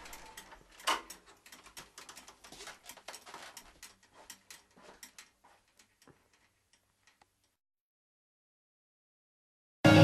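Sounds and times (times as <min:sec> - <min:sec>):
faint tapping and clicking: 0:00.0 - 0:07.6.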